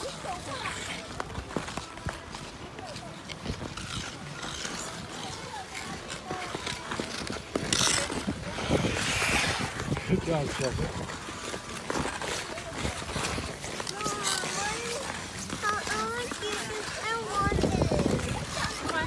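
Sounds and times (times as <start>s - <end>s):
ice skates scraping on ice: 0.0s - 19.0s.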